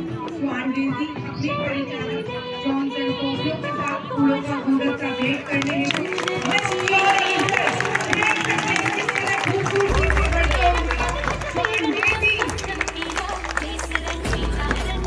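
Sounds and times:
voices over public address: 0.0s - 14.7s
music over public address: 0.0s - 15.0s
stadium crowd: 5.0s - 15.0s
low rumble: 9.9s - 15.0s.

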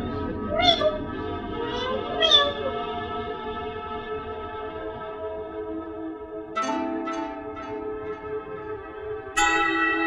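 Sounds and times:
sustained music drone: 0.0s - 10.0s
mewing calls: 1.8s - 2.8s.

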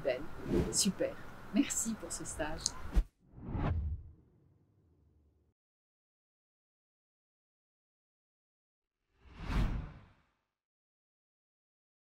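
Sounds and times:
whoosh sound effect: 3.4s - 4.1s.

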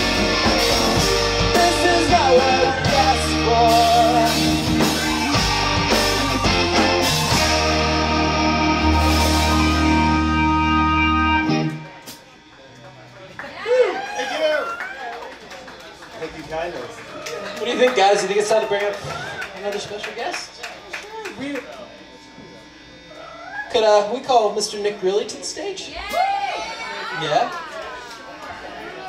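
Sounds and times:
steady low bass note: 0.0s - 12.0s
upward-gliding pitched sound: 0.0s - 12.1s
rock band sustained chord: 0.0s - 12.6s
faint amplifier hum: 0.0s - 29.0s.

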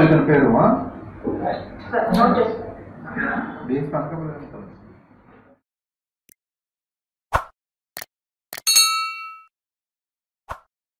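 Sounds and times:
bright bell ding: 8.7s - 9.5s.

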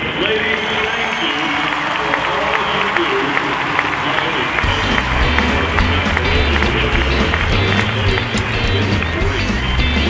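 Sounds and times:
music with steady bass line: 4.6s - 10.0s.

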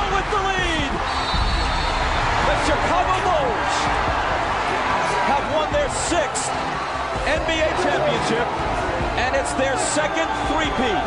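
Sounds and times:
arena crowd noise: 0.0s - 11.0s.

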